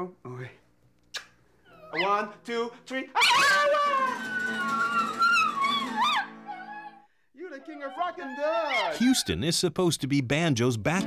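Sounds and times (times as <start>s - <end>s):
dog howling: 3.2s - 9.4s
strummed acoustic guitar: 3.9s - 6.5s.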